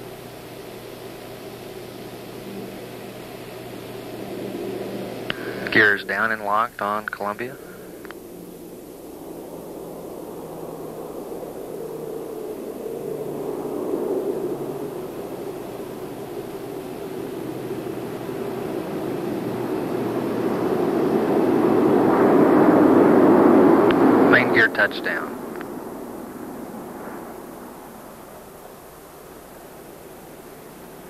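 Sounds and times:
rushing roar of air: 1.1s - 6.7s, 7.4s - 31.0s.

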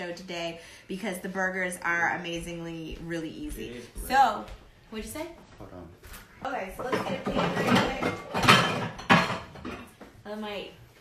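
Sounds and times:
cast-iron pans clanking: 6.8s - 10.0s.

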